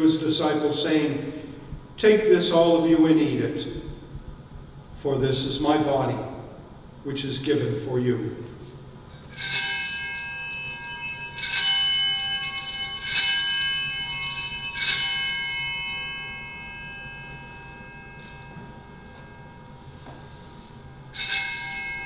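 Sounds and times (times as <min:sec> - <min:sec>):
altar bells ringing: 0:09.2 - 0:22.0.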